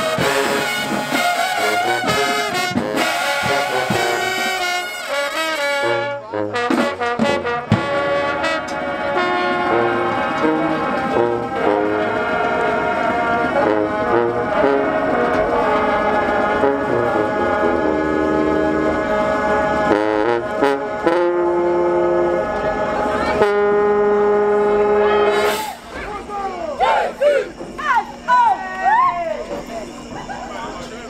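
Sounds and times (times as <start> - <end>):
brass band playing chords: 0.0 - 28.6
voices calling out: 7.4 - 31.0.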